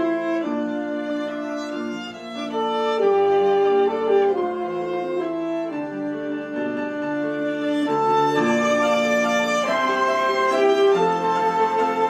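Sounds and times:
alto saxophone: 0.0s - 12.0s
flute: 0.0s - 12.0s
piano: 0.0s - 12.0s
violin: 0.0s - 12.0s.

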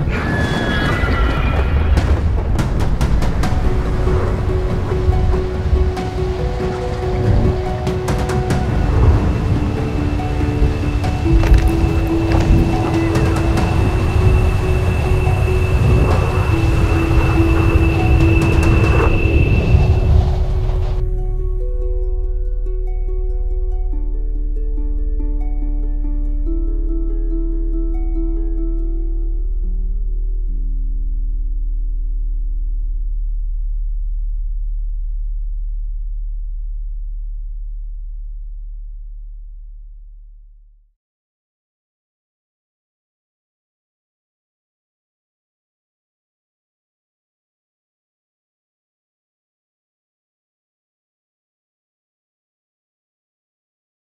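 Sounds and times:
low rumbling rush of wind: 0.0s - 23.8s
deep low drone: 2.0s - 40.9s
steady high tone: 4.5s - 22.2s
lower held tone: 4.9s - 31.8s.

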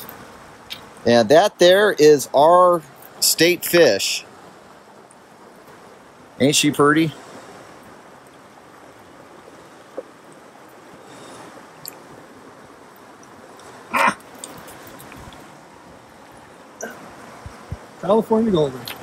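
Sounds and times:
river running over rocks: 0.0s - 19.0s.

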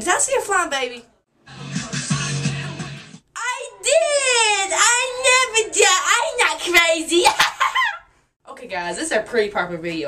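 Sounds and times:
boy sing-song shouting: 3.4s - 7.3s.

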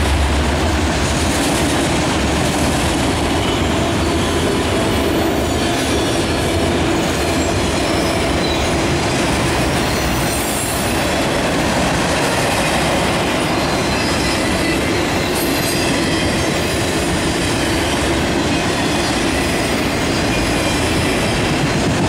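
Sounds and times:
steel train wheels on rails: 0.0s - 22.0s.

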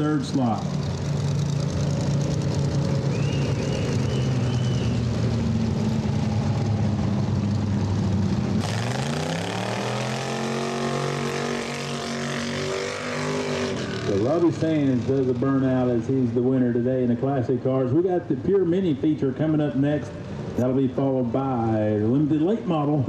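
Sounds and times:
race car engine revving: 0.0s - 16.4s.

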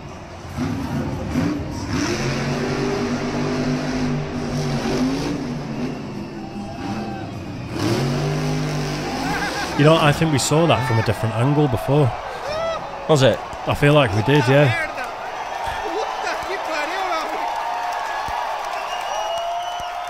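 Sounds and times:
monster truck engine revving: 0.0s - 11.8s.

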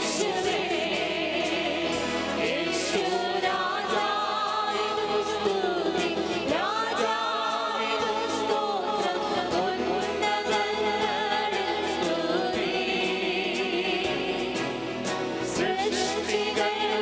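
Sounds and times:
choir singing worship song: 0.0s - 17.0s.

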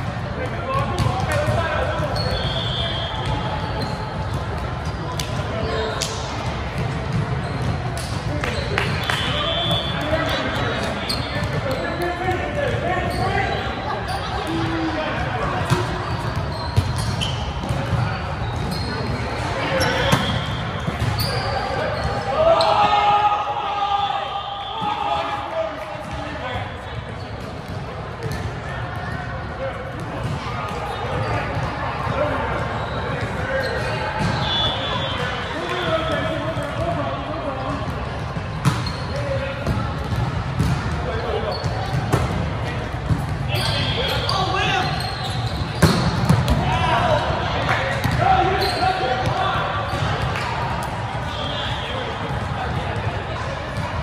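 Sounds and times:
chatter: 0.0s - 54.0s
players shouting: 18.7s - 26.7s.

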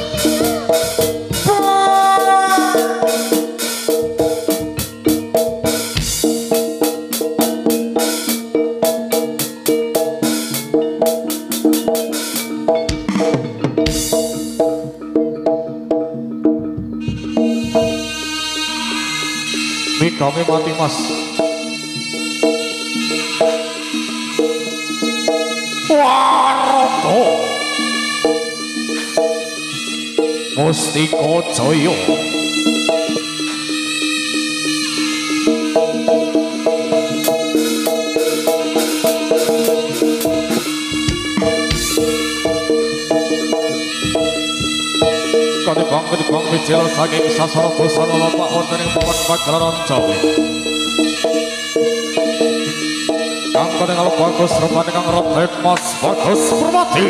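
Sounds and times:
sharp drum strokes: 0.0s - 15.4s, 35.2s - 57.0s
light percussion: 0.0s - 26.2s, 27.0s - 57.0s
gamelan music: 0.0s - 57.0s
melody of short held notes: 0.0s - 57.0s
gamelan gong-chimes: 2.9s - 20.0s.

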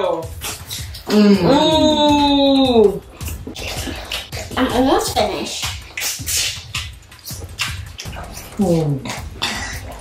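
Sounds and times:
person chewing and lip smacking: 0.3s - 1.6s, 3.1s - 4.6s, 5.6s - 10.0s.

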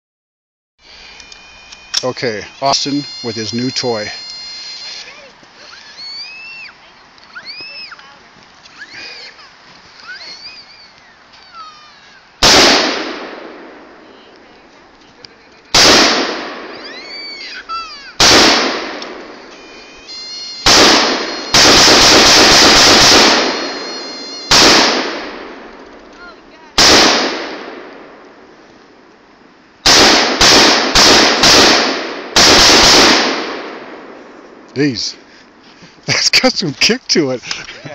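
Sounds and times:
rapid rifle fire: 12.4s - 13.8s, 15.7s - 16.8s, 18.2s - 19.3s, 20.6s - 23.8s, 24.4s - 25.6s, 26.8s - 27.9s, 29.8s - 34.2s
rifle gunshots with echo: 12.4s - 14.0s, 15.7s - 16.7s, 18.2s - 19.4s, 20.6s - 25.7s, 26.8s - 28.2s, 29.8s - 34.6s.

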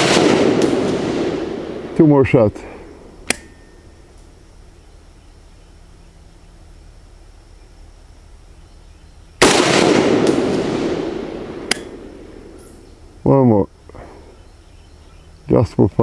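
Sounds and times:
rifle shot with long echo: 0.0s - 4.4s, 9.4s - 13.2s.

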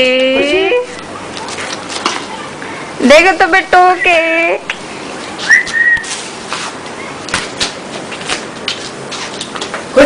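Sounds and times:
short rising whistle: 5.4s - 6.1s.

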